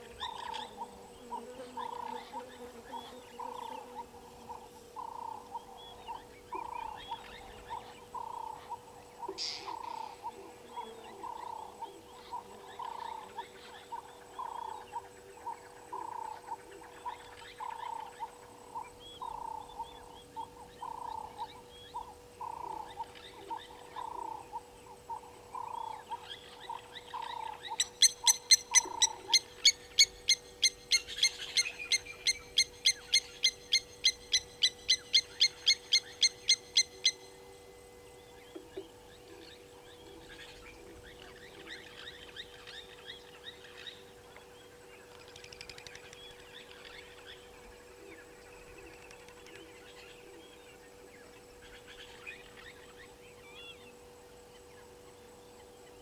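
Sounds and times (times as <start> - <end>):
faint steady hum: 0.0 - 56.0
rapid animal calls: 25.1 - 37.2.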